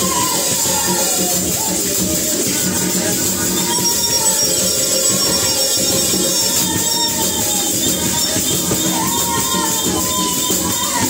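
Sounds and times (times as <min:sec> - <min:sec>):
hand drums beating: 0:00.0 - 0:11.0
voices singing together: 0:00.0 - 0:11.0.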